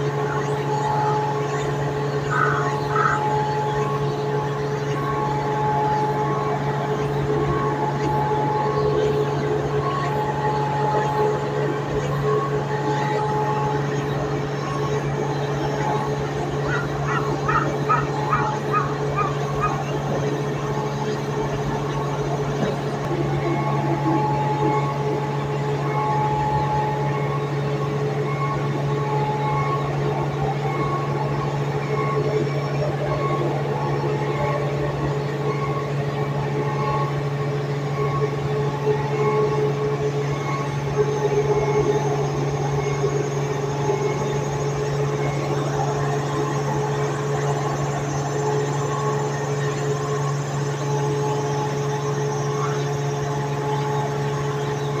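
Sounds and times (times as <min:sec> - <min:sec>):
gearbox whining: 0:00.0 - 0:55.0.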